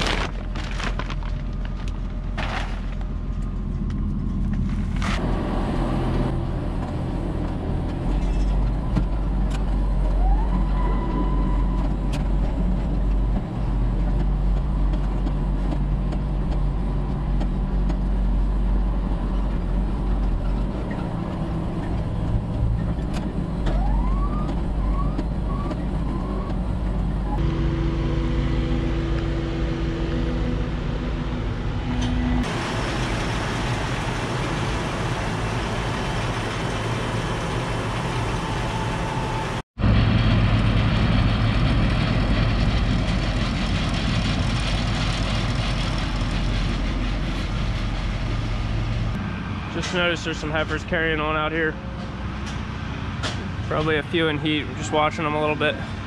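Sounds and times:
tractor engine running: 0:00.0 - 0:10.4, 0:11.6 - 0:56.0.

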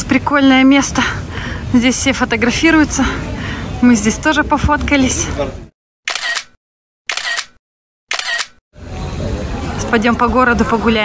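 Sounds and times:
camera shutter click: 0:06.1 - 0:08.6.

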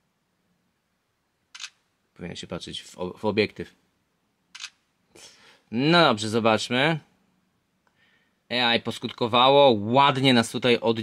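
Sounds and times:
smartphone camera shutter sound: 0:01.5 - 0:01.8, 0:04.5 - 0:04.8.

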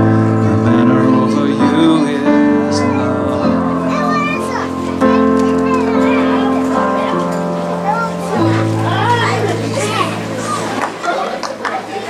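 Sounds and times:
children chattering: 0:00.0 - 0:12.0
keyboard chord: 0:00.0 - 0:12.0.

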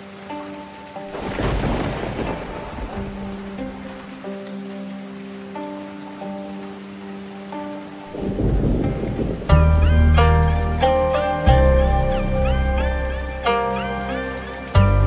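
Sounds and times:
rain: 0:00.0 - 0:15.0
slow music of held notes: 0:00.0 - 0:15.0
thunder rolling: 0:01.1 - 0:04.1, 0:08.1 - 0:10.8.

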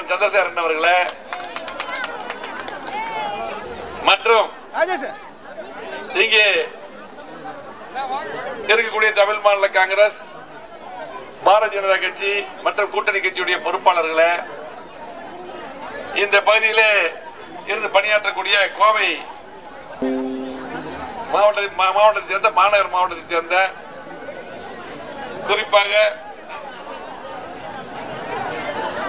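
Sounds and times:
crowd chatter outdoors: 0:00.0 - 0:29.0.

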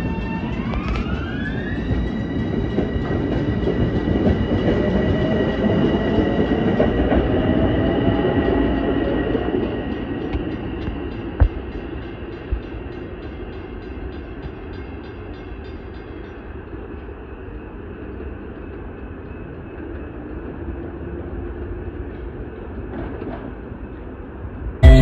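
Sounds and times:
electric train rumbling: 0:00.0 - 0:25.0.

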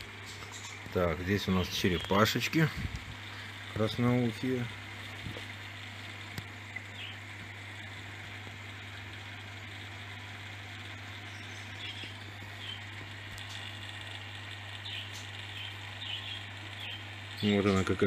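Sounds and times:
aquarium pump hum: 0:00.0 - 0:18.0.

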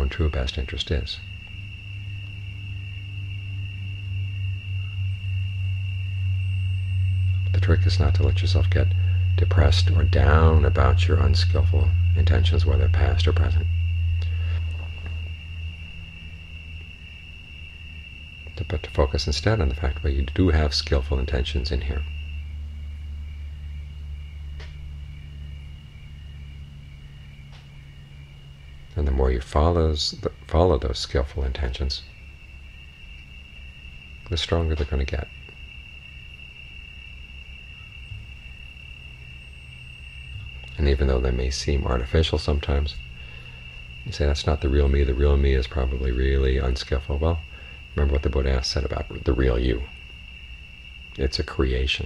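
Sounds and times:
high-pitched whine: 0:00.0 - 0:52.0
steady low hum: 0:00.0 - 0:52.0.

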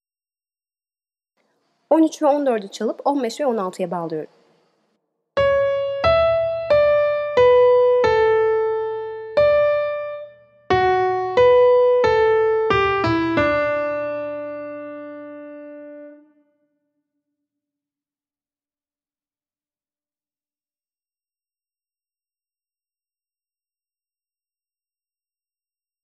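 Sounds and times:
piano melody: 0:05.4 - 0:16.4.

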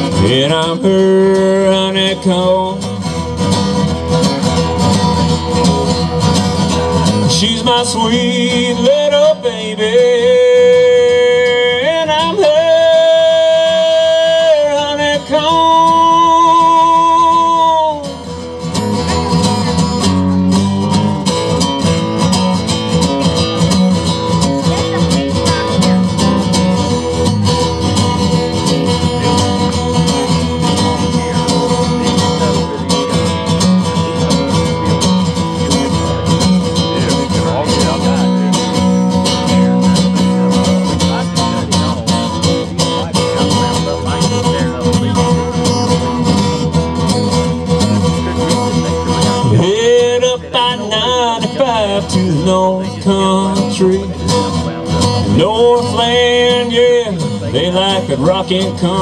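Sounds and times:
acoustic guitar playing: 0:00.0 - 0:59.0.

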